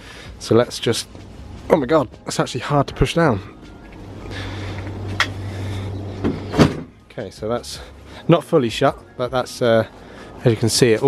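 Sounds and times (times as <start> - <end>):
car bonnet knocking onto catch: 6.2 - 6.9.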